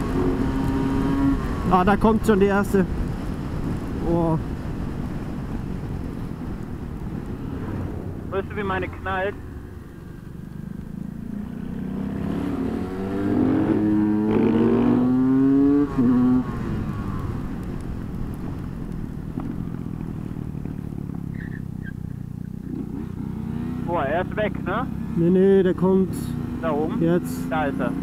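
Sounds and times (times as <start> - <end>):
wind rushing over camera: 0.0 - 21.4
motorcycle engine accelerating: 0.0 - 28.0.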